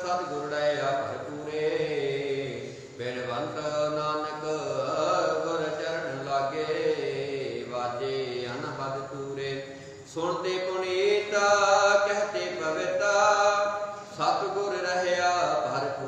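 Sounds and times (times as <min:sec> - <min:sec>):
man chanting melodically: 0:00.0 - 0:16.0.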